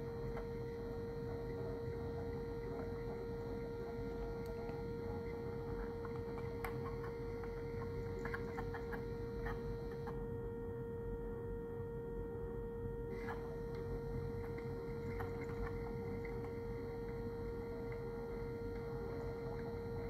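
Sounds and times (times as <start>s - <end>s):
siren steady tone: 0.0s - 20.0s.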